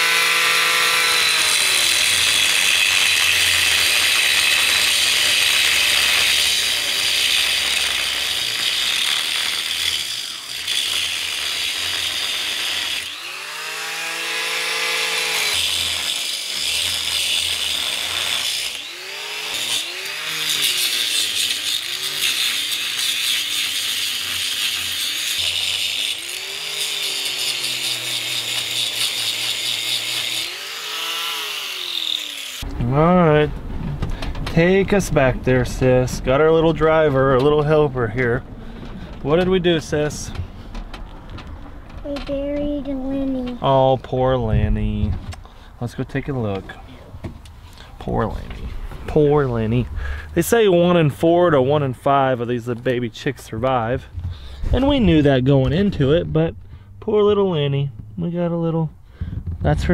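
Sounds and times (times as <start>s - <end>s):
angle grinder cutting steel: 0.0s - 32.7s.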